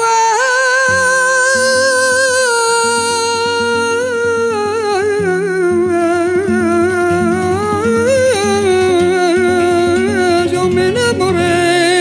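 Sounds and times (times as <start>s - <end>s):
man singing with vibrato: 0.0s - 12.0s.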